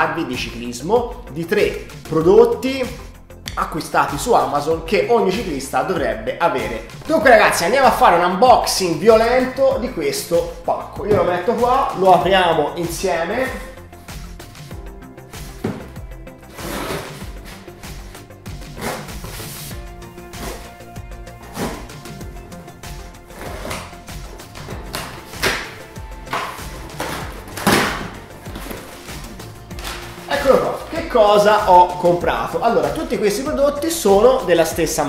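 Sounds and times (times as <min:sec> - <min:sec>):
background music: 0:00.0 - 0:35.0
cardboard box tearing: 0:16.5 - 0:17.6.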